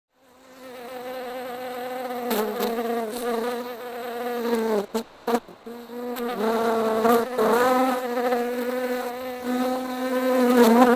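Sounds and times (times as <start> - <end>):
honeybees buzzing: 0.3 - 10.9.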